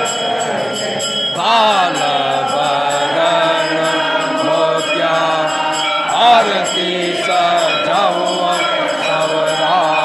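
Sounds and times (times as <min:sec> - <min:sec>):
devotional chanting with music: 0:00.0 - 0:10.0.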